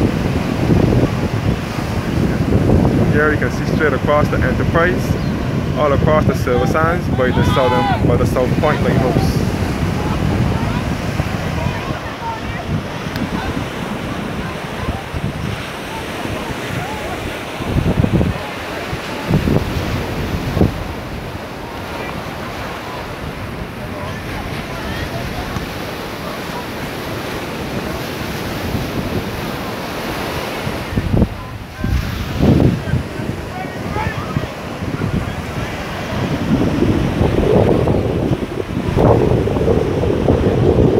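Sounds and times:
small waves breaking on sand: 0.0 - 40.9
wind buffeting microphone: 0.0 - 40.9.

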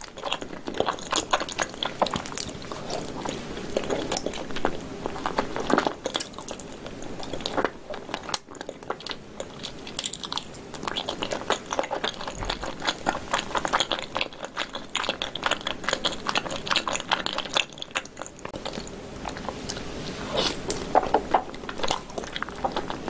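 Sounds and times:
close-miked chewing clicks: 0.0 - 19.9, 20.6 - 23.0.

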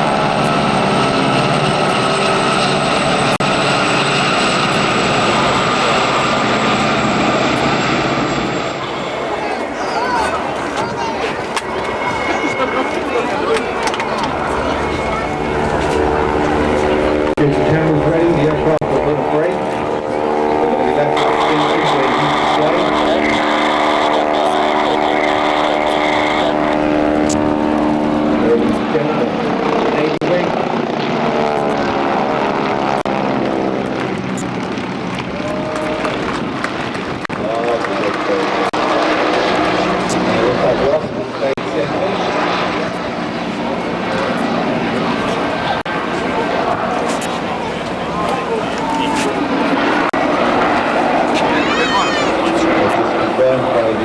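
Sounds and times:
helicopter flying past: 0.0 - 54.0
propeller plane engines droning: 0.0 - 54.0.

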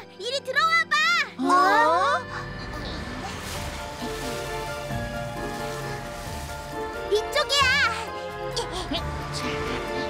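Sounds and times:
music with sustained tones: 0.0 - 10.0.

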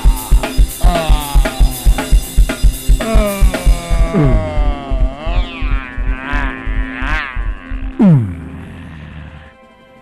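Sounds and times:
pulsing bass beat: 0.0 - 8.8
wavering keyboard tone: 0.0 - 9.2.

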